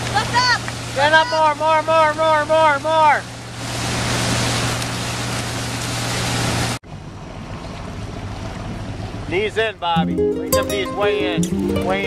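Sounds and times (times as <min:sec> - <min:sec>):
rush of spray and water: 0:00.0 - 0:06.8.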